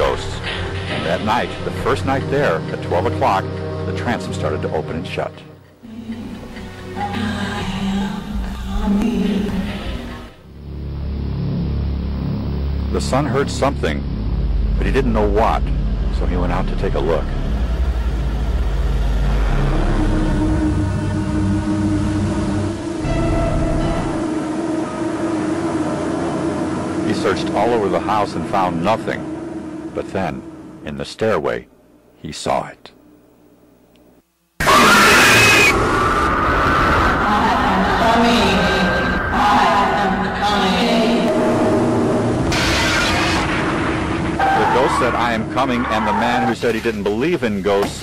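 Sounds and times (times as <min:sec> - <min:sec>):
low steady rumble: 0:05.9 - 0:32.2
faint wavering tone: 0:19.6 - 0:31.4
harsh noise burst with shriek: 0:22.2 - 0:30.8, 0:34.6 - 0:47.0.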